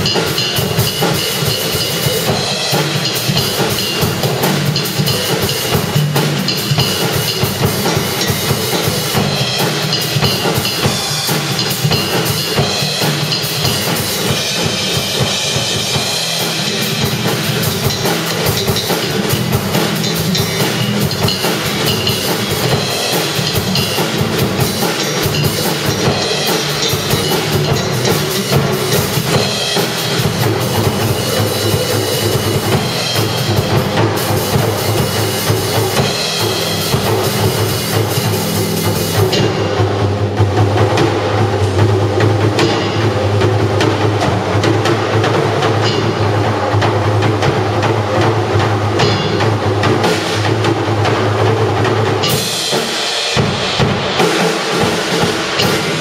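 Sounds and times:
cymbal crashes: 0:00.0 - 0:40.2, 0:52.1 - 0:56.0
electric bass line: 0:00.0 - 0:52.4
drum kit played busily: 0:00.0 - 0:56.0.

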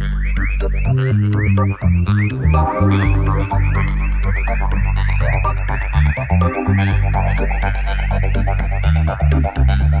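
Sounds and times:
chirping electronic blips: 0:00.0 - 0:10.0
deep bass line: 0:00.0 - 0:10.0.

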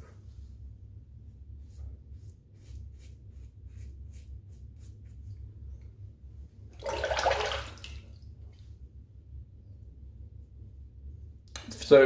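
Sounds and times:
tap running water: 0:06.8 - 0:08.0.

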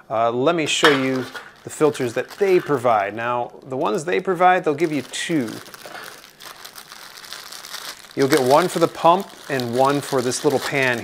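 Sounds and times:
plastic bag crinkling: 0:00.6 - 0:11.0.

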